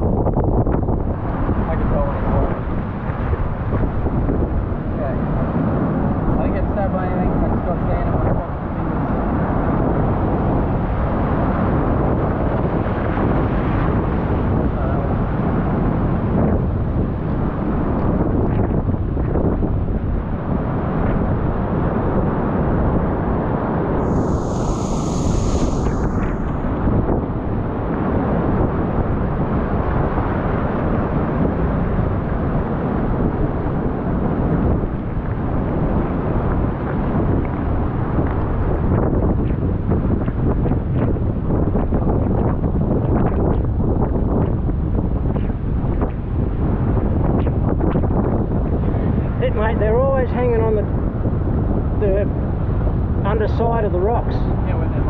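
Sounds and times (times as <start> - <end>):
wind buffeting microphone: 0.0 - 55.0
surf rushing over rocks: 24.0 - 28.0.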